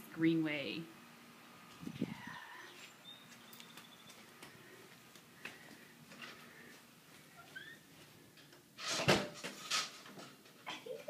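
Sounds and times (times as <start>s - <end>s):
distant bird chirps: 2.2s - 4.9s.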